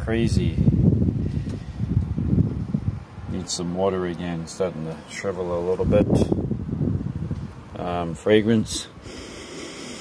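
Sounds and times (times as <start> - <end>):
wind buffeting microphone: 0.0 - 4.0, 5.2 - 9.1.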